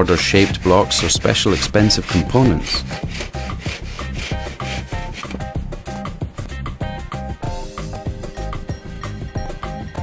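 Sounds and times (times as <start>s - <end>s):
hand saw rasping through concrete: 0.0s - 5.6s.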